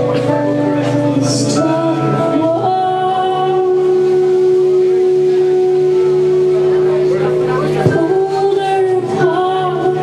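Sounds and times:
rock band sustained note: 0.0s - 10.0s.

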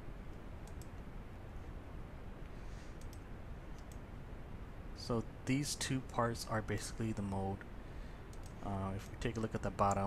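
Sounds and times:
faint computer clicks: 0.3s - 1.0s, 2.4s - 4.1s, 8.3s - 10.0s.

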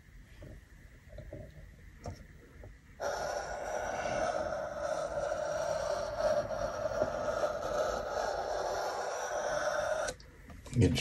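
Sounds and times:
pencil scraping on paper: 3.0s - 10.1s.

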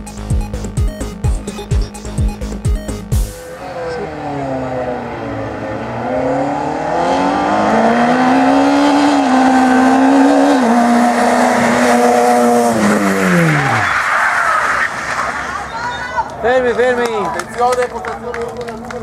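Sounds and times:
race car engine revving: 3.1s - 15.7s
tyres squealing: 10.8s - 16.4s.

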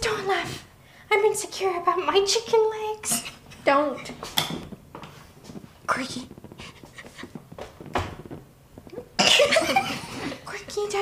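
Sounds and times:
women laughing: 9.4s - 10.4s.

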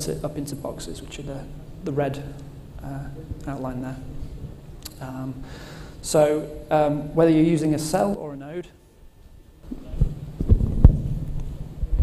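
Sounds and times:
steady low hum: 0.0s - 12.0s
low thumps: 9.6s - 12.0s.

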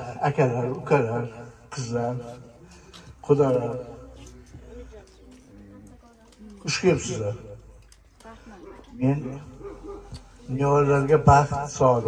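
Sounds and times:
man speaking into microphone: 0.0s - 2.4s, 6.7s - 7.6s, 10.5s - 12.0s.

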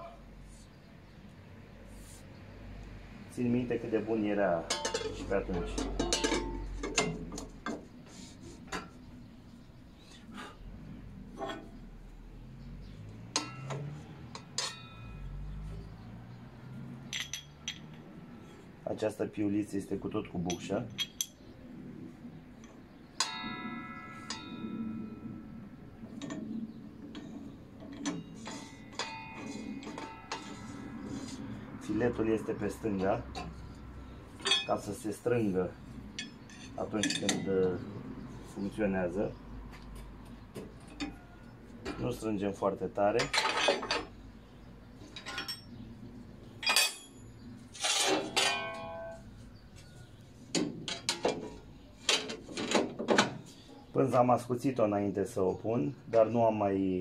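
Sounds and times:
metallic clinks and knocks: 4.7s - 7.8s, 13.0s - 15.8s, 17.0s - 18.2s, 20.4s - 21.5s, 26.1s - 31.5s, 33.3s - 35.0s, 36.0s - 37.9s, 43.1s - 45.9s, 46.6s - 53.5s
saw blade knocking and ringing: 23.2s - 25.2s.

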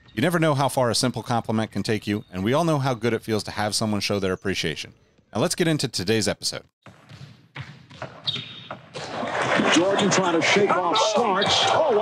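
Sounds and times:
basketball dribbling on court: 6.8s - 9.2s.

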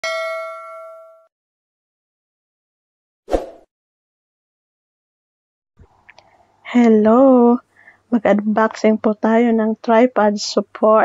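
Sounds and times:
bell ding: 0.0s - 1.3s.

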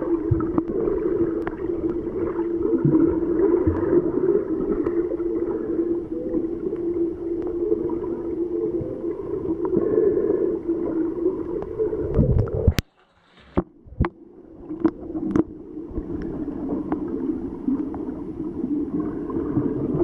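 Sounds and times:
muffled underwater low hum: 0.0s - 20.0s
underwater clicks: 11.6s - 15.5s.

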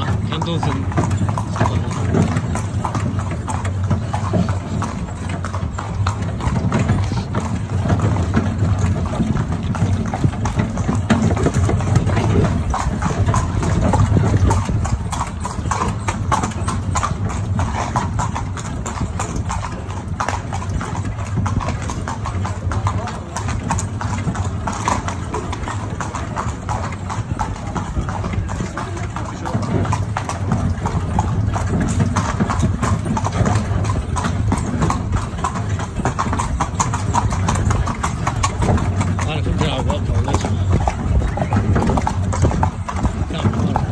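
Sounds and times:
hooves clip-clopping on stone: 0.0s - 43.9s
metal carriage rolling: 0.0s - 43.9s.

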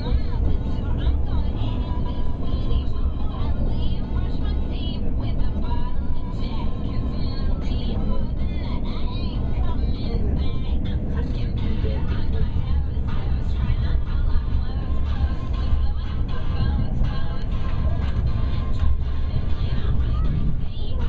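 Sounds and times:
train rumbling from inside carriage: 0.0s - 21.0s
voices: 0.0s - 21.0s.

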